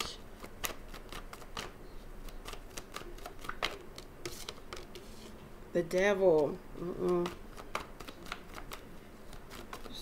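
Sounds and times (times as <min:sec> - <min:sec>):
cards being shuffled: 0:00.0 - 0:05.4, 0:06.3 - 0:10.0.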